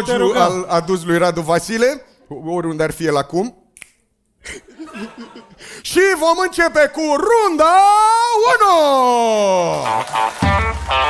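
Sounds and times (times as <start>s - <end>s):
stage music with bass and guitar: 9.8s - 11.0s.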